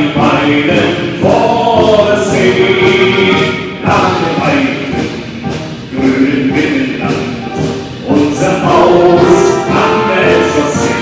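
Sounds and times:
solo singer on microphone: 0.0s - 5.2s, 5.9s - 11.0s
military wind band: 0.0s - 11.0s
group singing along: 5.9s - 11.0s.

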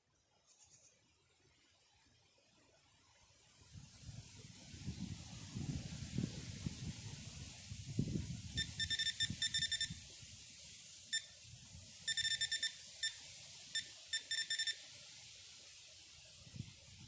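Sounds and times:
bite alarm beeping: 8.6s - 10.0s, 12.1s - 13.2s, 13.8s - 14.8s.

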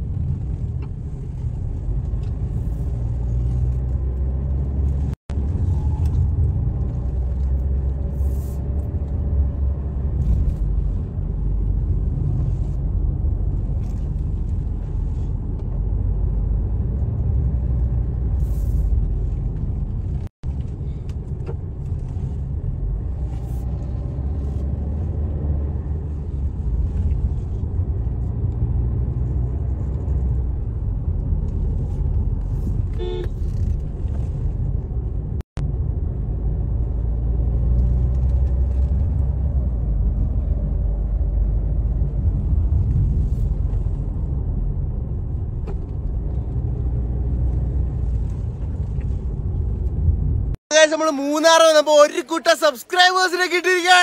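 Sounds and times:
car cabin road and engine rumble: 0.0s - 54.0s.

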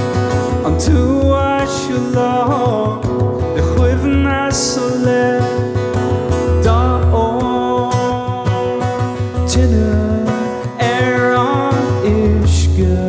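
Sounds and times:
acoustic guitar strummed: 0.0s - 13.0s
man singing: 0.0s - 13.0s.

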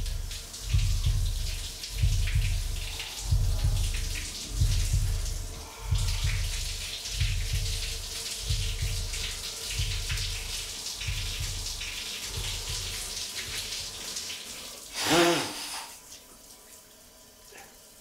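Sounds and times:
low throb: 0.0s - 13.7s
shower water spraying: 0.0s - 16.3s.

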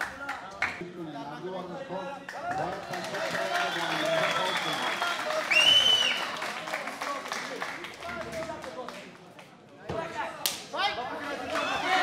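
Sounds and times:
crowd cheering and applauding: 2.4s - 8.5s, 11.2s - 12.0s.

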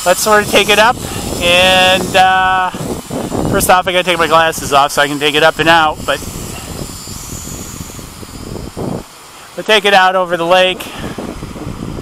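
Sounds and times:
quadcopter motors whining: 0.0s - 12.0s
wind rumbling on microphone: 0.0s - 12.0s.

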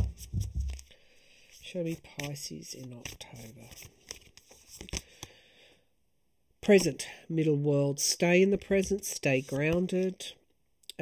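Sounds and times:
cards being shuffled: 0.0s - 0.9s, 1.5s - 5.2s.

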